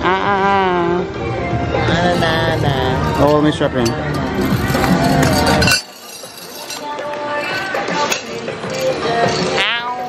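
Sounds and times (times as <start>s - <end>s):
music: 0.0s - 10.0s
voices: 0.0s - 10.0s
metal chains clinking: 3.2s - 9.5s.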